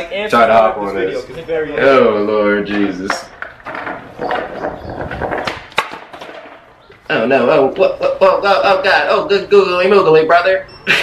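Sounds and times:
skateboard clack: 0:02.6 - 0:07.0
skateboard wheels rolling: 0:02.6 - 0:07.4.

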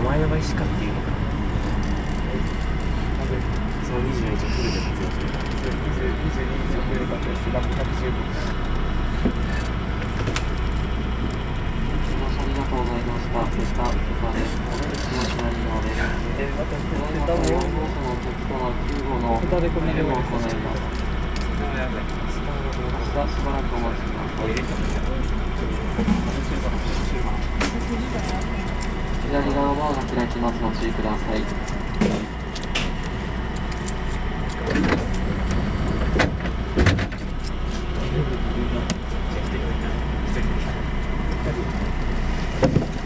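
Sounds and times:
electric train hum: 0:00.0 - 0:43.0
low voices: 0:00.0 - 0:43.0.

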